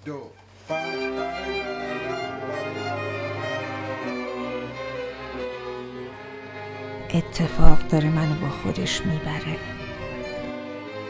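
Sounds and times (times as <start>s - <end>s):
string orchestra sustained chords: 0.6s - 11.0s.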